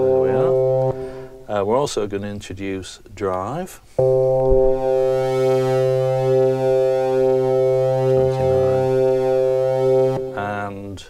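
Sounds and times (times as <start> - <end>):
distorted synthesiser organ tone: 0.0 - 1.6, 4.0 - 10.8.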